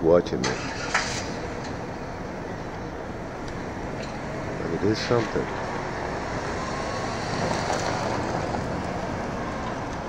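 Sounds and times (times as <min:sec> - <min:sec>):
car engine rumble: 0:00.0 - 0:10.0
road noise: 0:00.0 - 0:10.0.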